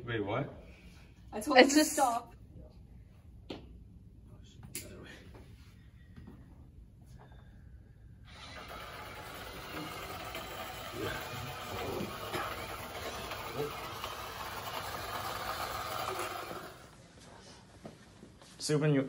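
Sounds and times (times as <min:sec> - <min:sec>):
robot motors whirring: 0:08.3 - 0:16.9.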